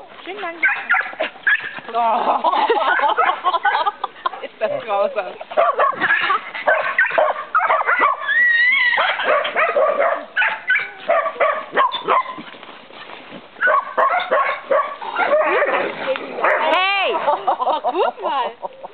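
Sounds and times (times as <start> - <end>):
dogs yipping barking and whining: 0.5 - 1.9, 5.5 - 12.6, 13.6 - 16.8.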